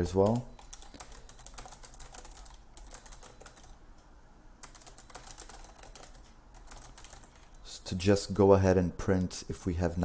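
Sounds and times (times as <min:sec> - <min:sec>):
computer keyboard typing: 0:00.0 - 0:03.8, 0:04.6 - 0:07.6.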